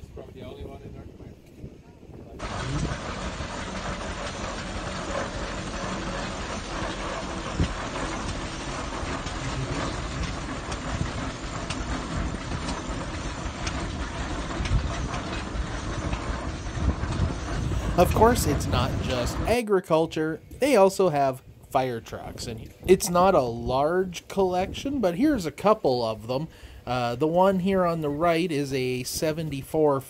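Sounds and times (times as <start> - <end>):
steam traction engine running: 1.6 - 19.6, 20.6 - 29.9.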